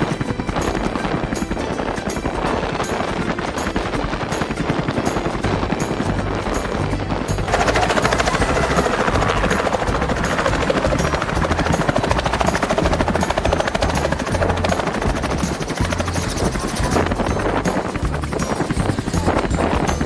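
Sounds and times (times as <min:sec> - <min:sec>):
helicopter rotor and engine: 0:00.0 - 0:20.0.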